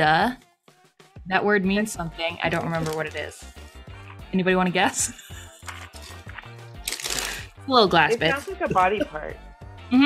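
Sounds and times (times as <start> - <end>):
music with repeating bass line: 7.6 - 10.0.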